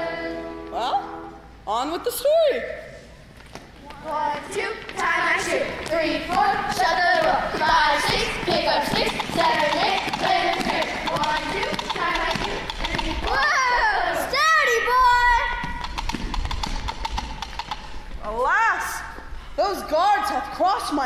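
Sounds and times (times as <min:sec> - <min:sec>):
children's voices: 0:03.8 - 0:15.8
clip-clop of hoofbeats: 0:06.3 - 0:13.5, 0:15.6 - 0:18.1.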